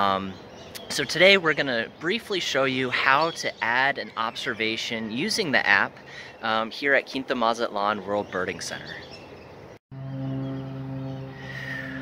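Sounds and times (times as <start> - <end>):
faint outdoor background: 0.0 - 12.0
low machine hum: 9.9 - 12.0.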